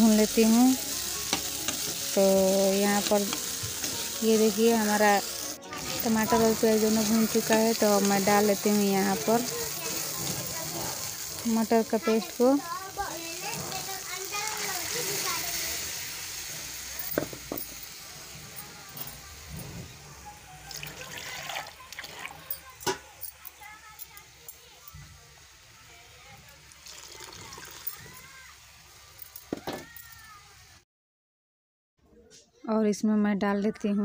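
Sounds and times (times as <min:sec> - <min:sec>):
steel utensils clinking: 0:00.0 - 0:15.7, 0:16.5 - 0:19.8, 0:20.6 - 0:25.0
paste hissing in hot pan: 0:00.0 - 0:29.5
water pouring into steel jar: 0:20.6 - 0:24.6, 0:26.7 - 0:28.3.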